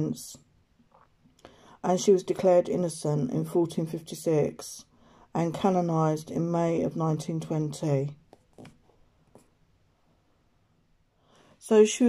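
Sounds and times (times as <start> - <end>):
woman speaking: 0.0 - 0.5, 1.8 - 8.2, 11.6 - 12.0.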